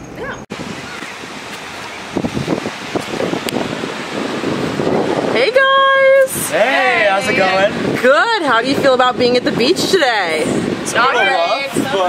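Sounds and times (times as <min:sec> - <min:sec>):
wind blowing over microphone: 0:00.0 - 0:12.0.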